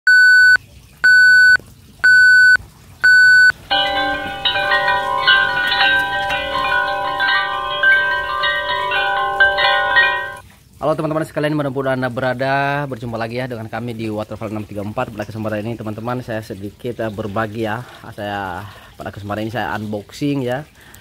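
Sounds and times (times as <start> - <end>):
electronic beeps: 0.1 - 3.5
instrumental intro music: 3.7 - 10.4.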